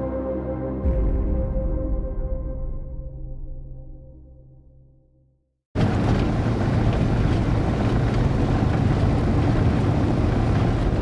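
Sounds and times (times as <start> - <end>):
vehicle engine and tyre rumble: 5.8 - 11.0.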